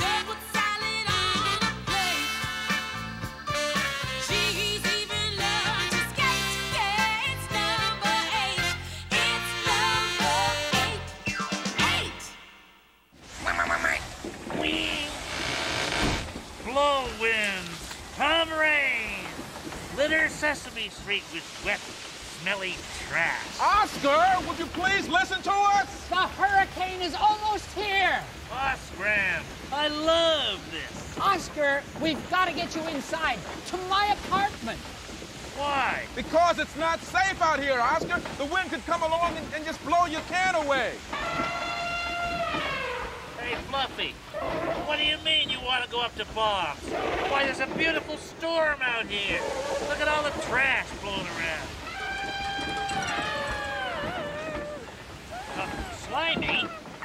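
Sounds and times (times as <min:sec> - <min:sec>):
wind and rain: 0:13.1 - 0:57.0
vocal cries: 0:51.7 - 0:57.0.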